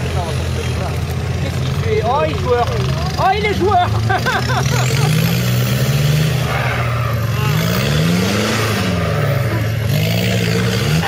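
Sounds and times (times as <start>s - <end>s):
off-road engine revving: 0.0s - 11.0s
people laughing: 3.6s - 5.6s, 9.1s - 9.9s.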